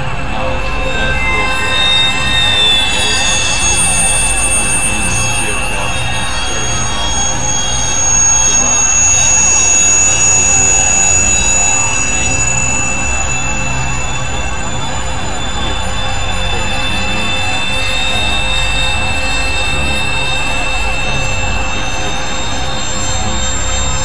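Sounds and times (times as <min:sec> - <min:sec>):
high held synth tones: 0:00.0 - 0:24.0
low rumble: 0:00.0 - 0:24.0
noisy synthesizer drone: 0:00.0 - 0:24.0.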